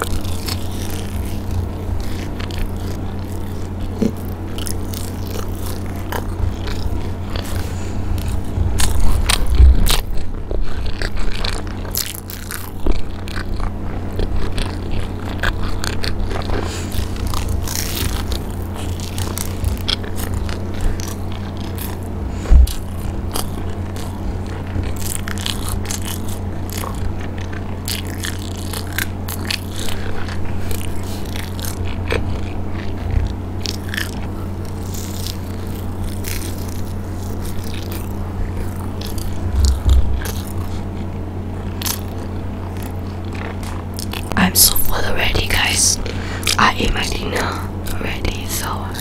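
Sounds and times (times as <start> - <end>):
crunchy food chewing: 0.0 - 49.0
low hum: 0.0 - 49.0
low thumps: 22.1 - 23.4, 39.2 - 41.8
wet mouth clicks: 41.7 - 44.4.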